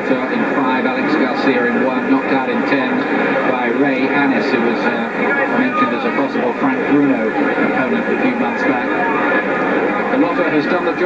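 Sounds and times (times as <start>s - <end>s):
steady background din: 0.0s - 11.0s
voices talking: 0.0s - 11.0s.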